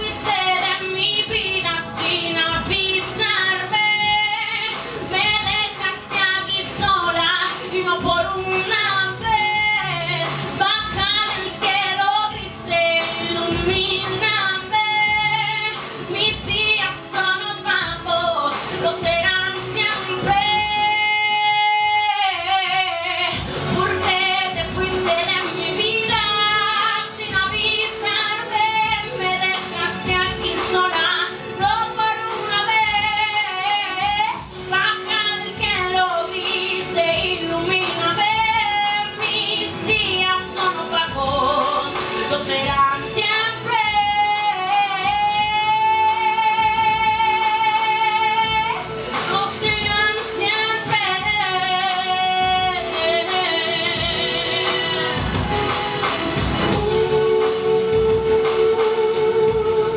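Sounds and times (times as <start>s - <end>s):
woman singing: 0.0s - 59.9s.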